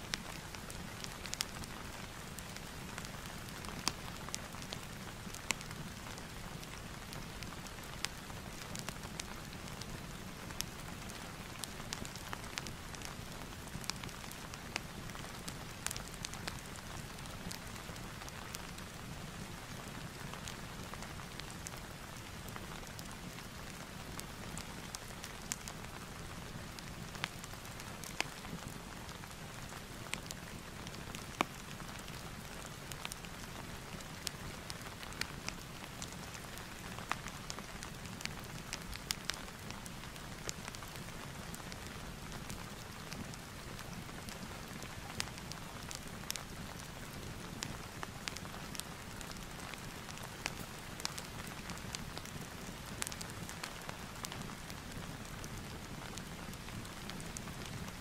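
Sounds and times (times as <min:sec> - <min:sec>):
fire crackling and popping: 0:00.1 - 0:58.0.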